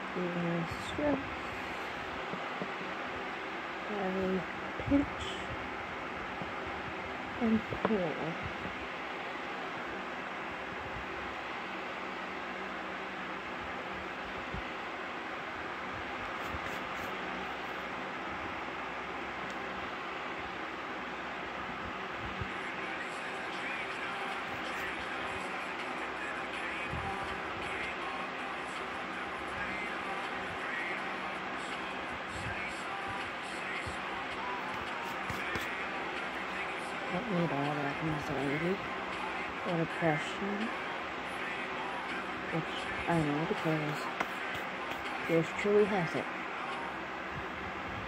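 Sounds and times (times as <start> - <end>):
faint low hum: 0.0 - 48.0
person speaking a word: 42.5 - 44.1.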